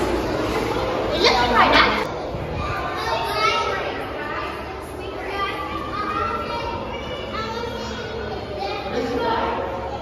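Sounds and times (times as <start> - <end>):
children and visitors talking: 0.0 - 10.0.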